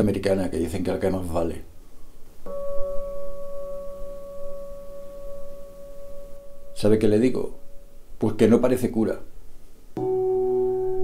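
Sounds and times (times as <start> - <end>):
struck bell-like tone ringing: 2.4 - 8.1, 10.0 - 11.0.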